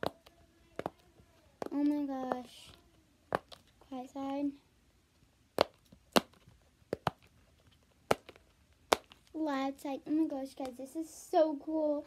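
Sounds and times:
fidget toy popping: 0:05.5 - 0:07.3, 0:08.0 - 0:09.3.

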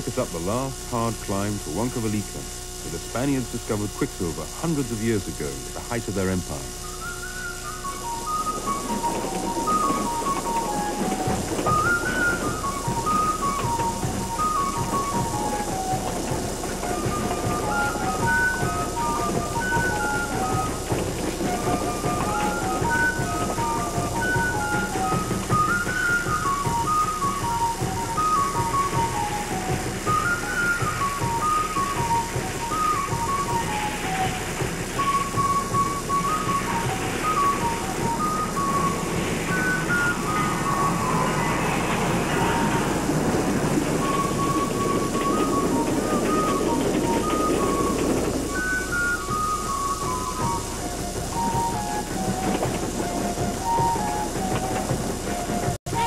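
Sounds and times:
steam locomotive working uphill: 0:00.0 - 0:56.0
music with short high notes: 0:05.7 - 0:56.0.

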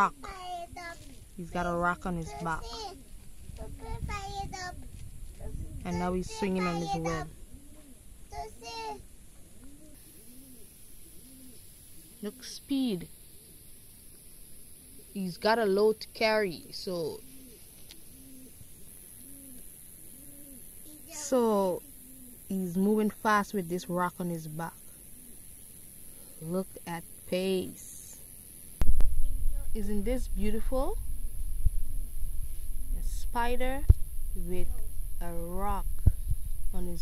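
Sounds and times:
dove cooing: 0:00.0 - 0:13.8, 0:14.8 - 0:28.2
child singing: 0:00.2 - 0:01.0, 0:03.6 - 0:04.8, 0:05.4 - 0:07.3
low rumble: 0:28.8 - 0:37.0.

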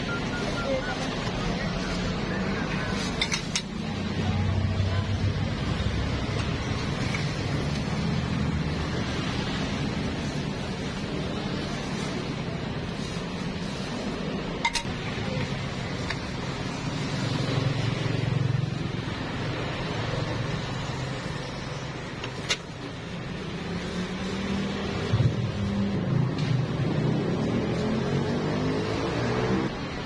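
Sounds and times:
street traffic: 0:00.0 - 0:30.0
vehicle engine revving: 0:23.6 - 0:30.0.

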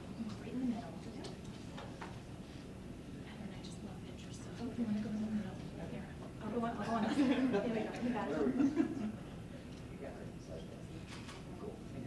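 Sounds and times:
murmur of voices: 0:03.0 - 0:12.0.

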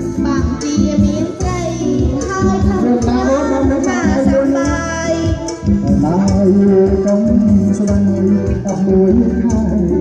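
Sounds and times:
electronic keyboard: 0:00.0 - 0:10.0
person singing into a microphone: 0:00.0 - 0:10.0
regular low beat: 0:00.9 - 0:10.0.

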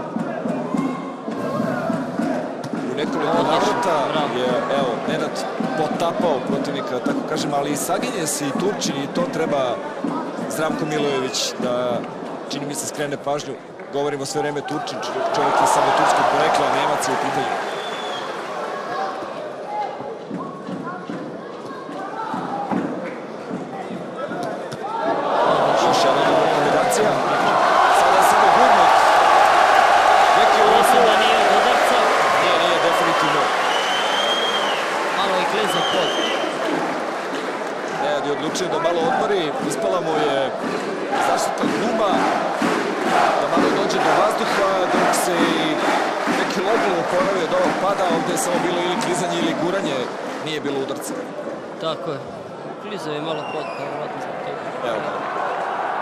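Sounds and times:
crowd cheering and shouting: 0:00.0 - 0:11.8, 0:14.4 - 0:20.4, 0:24.4 - 0:51.7, 0:54.1 - 0:56.0
sharp claps or smacks: 0:40.6 - 0:50.4.

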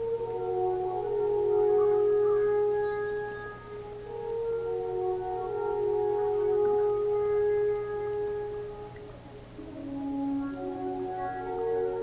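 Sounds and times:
alphorn long low note: 0:00.0 - 0:12.0.

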